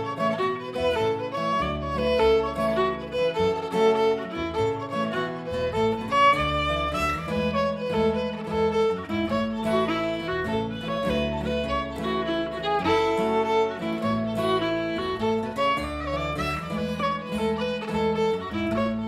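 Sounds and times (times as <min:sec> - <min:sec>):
double bass plucking: 0:00.0 - 0:19.0
fiddle playing a jig: 0:00.0 - 0:19.0
guitar accompaniment: 0:00.0 - 0:19.0.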